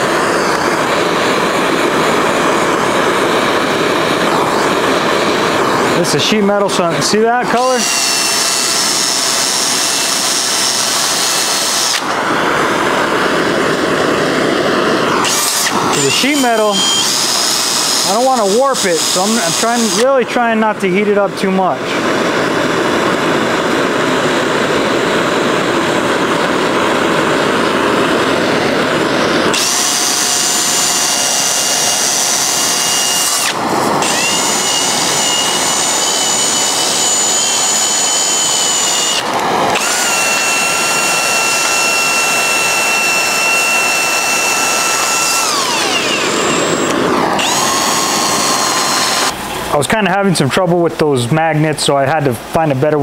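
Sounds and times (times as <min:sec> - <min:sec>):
drill motor whine: 0:00.0 - 0:49.8
gas torch hissing: 0:00.0 - 0:49.8.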